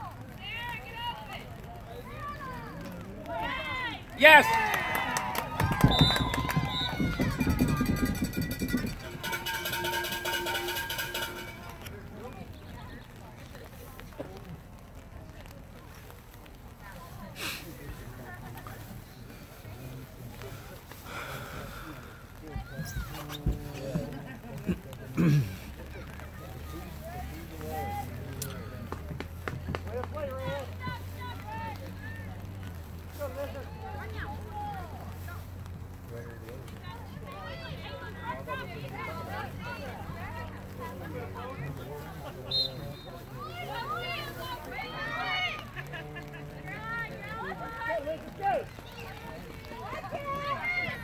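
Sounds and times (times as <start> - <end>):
spectators shouting: 0.9 - 11.9, 42.6 - 51.0
people calling out: 3.2 - 11.9.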